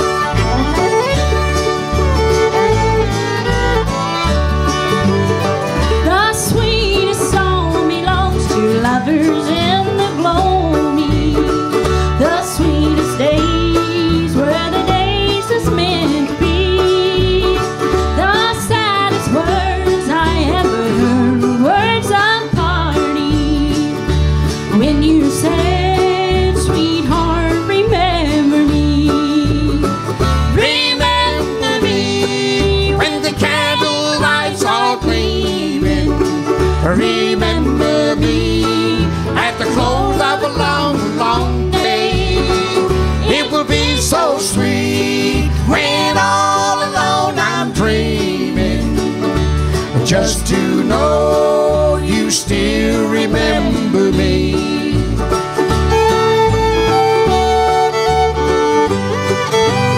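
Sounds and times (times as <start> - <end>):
acoustic guitar: 0.0 - 59.9
autoharp: 0.0 - 59.9
fiddle: 0.0 - 59.9
mandolin: 0.0 - 59.9
upright bass: 0.0 - 59.9.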